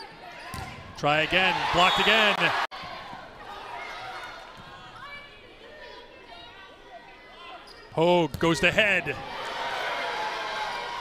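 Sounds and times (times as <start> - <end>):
faint crowd and player voices: 0.0 - 11.0.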